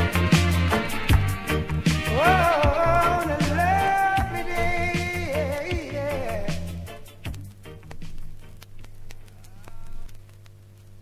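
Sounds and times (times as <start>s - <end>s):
faint clicks: 7.2s - 11.0s.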